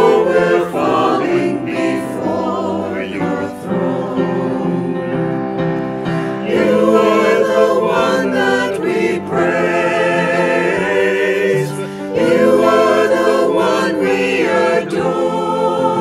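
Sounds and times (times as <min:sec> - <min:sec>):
mixed choir singing a hymn: 0:00.0 - 0:16.0
singers breathing: 0:05.7 - 0:06.5, 0:11.7 - 0:12.2.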